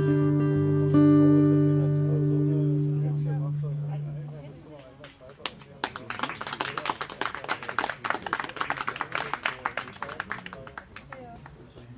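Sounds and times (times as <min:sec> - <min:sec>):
acoustic guitar chord: 0:00.0 - 0:04.8
audience applauding: 0:05.4 - 0:11.6.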